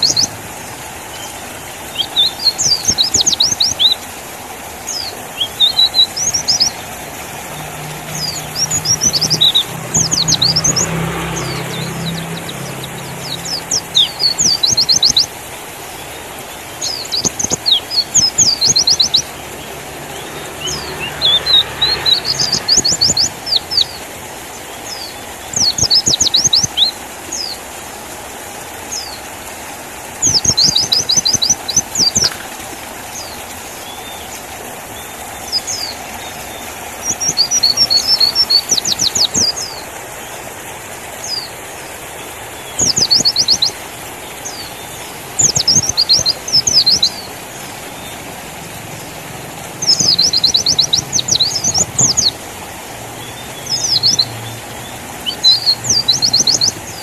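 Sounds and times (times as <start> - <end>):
bird chirping trills: 0.0 - 0.4, 4.8 - 27.6, 30.2 - 34.4, 35.0 - 40.4, 41.2 - 48.4, 49.0 - 52.4, 53.2 - 57.0
faint low engine hum: 4.2 - 57.0.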